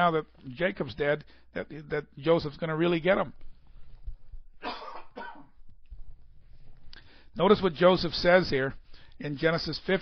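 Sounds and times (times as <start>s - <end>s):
man coughing: 4.6s - 5.6s.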